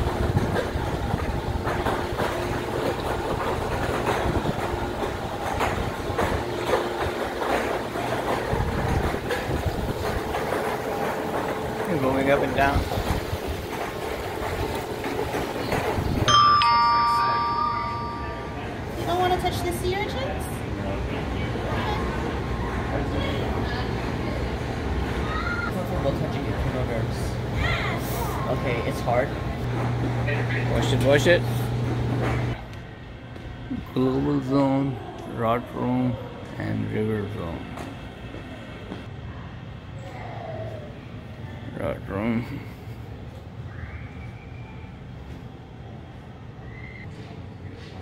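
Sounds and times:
indoor hall rumble: 0.0s - 48.0s
electronic two-note chime: 16.3s - 18.8s.

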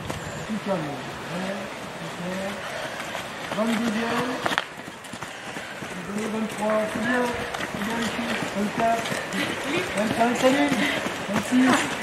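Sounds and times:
people calling out and talking: 0.4s - 12.0s.

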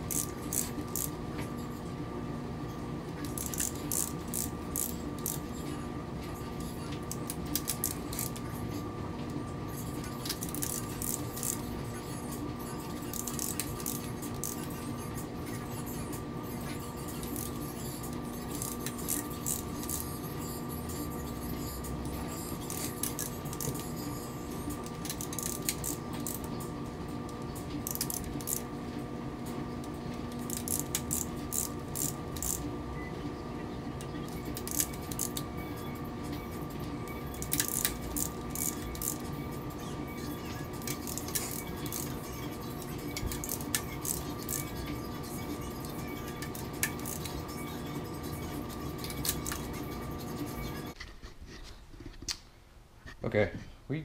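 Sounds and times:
steady hum: 0.0s - 54.0s
ratchet wrench clicking: 0.1s - 1.1s, 3.2s - 5.4s, 10.2s - 11.6s, 13.1s - 14.7s, 25.0s - 26.4s, 27.8s - 28.6s, 30.5s - 32.6s, 34.6s - 35.4s, 37.4s - 39.2s, 40.8s - 42.1s.

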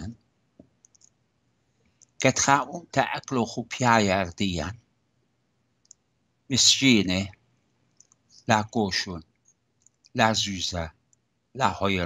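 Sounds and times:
faint short clicks: 0.8s - 1.2s
man talking: 2.2s - 4.8s, 6.5s - 7.3s, 8.5s - 9.2s, 10.2s - 10.9s, 11.6s - 12.0s.

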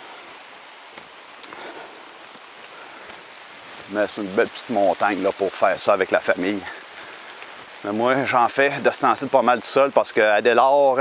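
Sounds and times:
rain falling on leaves: 0.0s - 11.0s.

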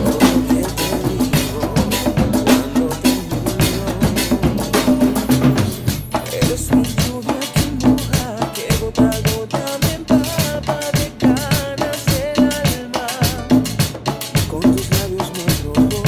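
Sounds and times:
latin percussion ensemble: 0.0s - 16.0s
metal scraper rhythm: 0.0s - 16.0s.

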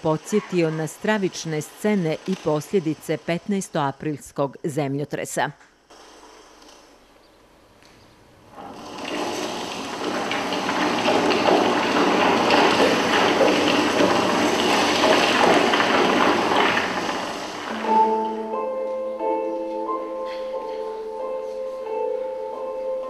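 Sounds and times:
music: 17.7s - 23.0s.

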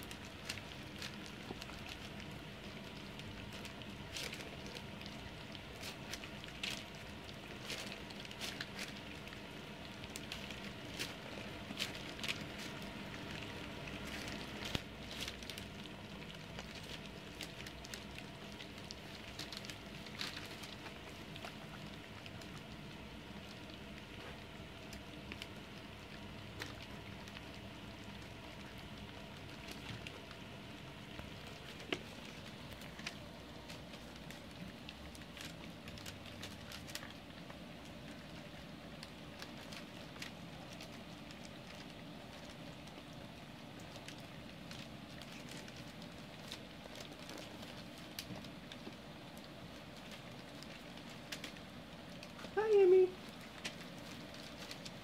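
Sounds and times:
puppies lapping and chewing food: 0.0s - 52.6s, 53.2s - 55.0s.

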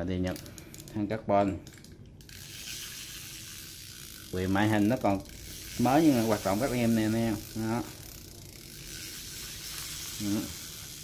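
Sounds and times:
fishing reel whirring: 1.6s - 11.0s.

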